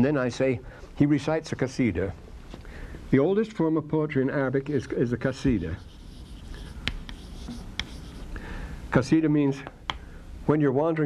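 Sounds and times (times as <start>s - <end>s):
writing scratching on board: 5.5s - 8.4s
sharp taps: 6.8s - 8.0s.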